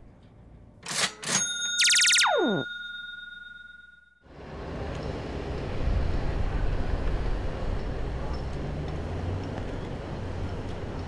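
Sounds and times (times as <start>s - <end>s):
low rumble of city traffic: 0.0s - 0.8s, 4.3s - 11.0s
ringing tone: 1.3s - 4.2s
synthesized falling sweep: 1.8s - 2.6s
sharp electronic clicks: 1.8s - 2.8s.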